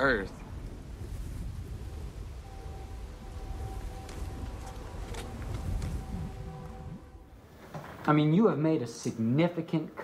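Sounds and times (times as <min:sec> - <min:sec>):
faint thin steady tone: 0:02.2 - 0:07.4.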